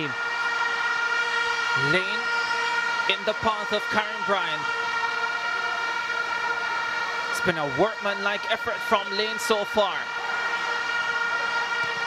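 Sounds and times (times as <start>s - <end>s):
drone of fans' horns: 0.0s - 12.0s
stadium crowd noise: 0.0s - 12.0s.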